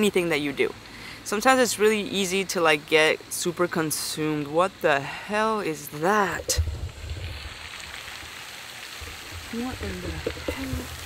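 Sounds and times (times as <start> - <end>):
low rumble: 6.4 - 8.4.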